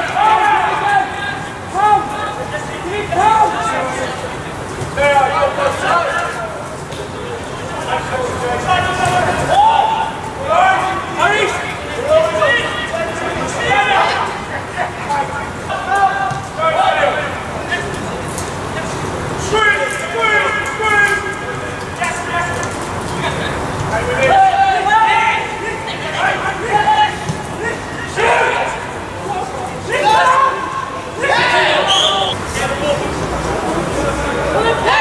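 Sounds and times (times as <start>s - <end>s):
outdoor background noise: 0.0s - 35.0s
high-pitched shouting calls: 31.4s - 32.4s.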